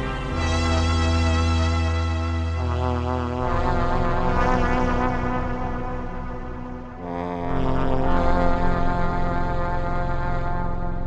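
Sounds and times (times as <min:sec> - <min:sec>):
synthesizer pad chord: 0:00.0 - 0:11.0.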